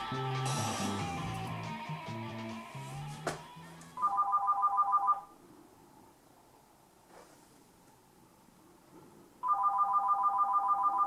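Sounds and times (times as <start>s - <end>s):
background music: 0.0s - 4.1s
phone ringing electronic trill: 4.0s - 5.3s, 9.4s - 11.0s.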